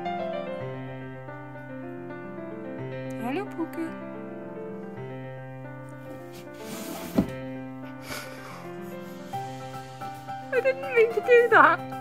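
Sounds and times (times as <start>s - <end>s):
keyboard music with held notes: 0.0s - 12.0s
rustling of fabric boxes: 6.1s - 7.4s.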